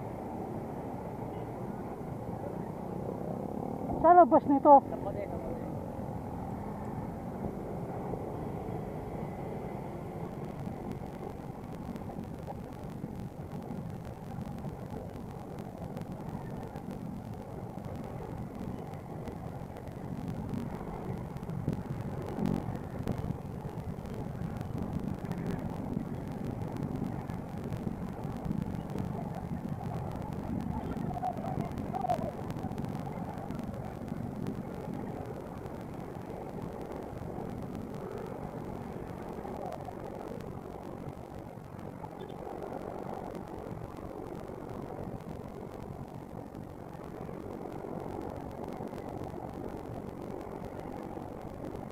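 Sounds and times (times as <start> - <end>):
other motorcycles running: 0.0 - 51.9
road noise: 0.0 - 51.9.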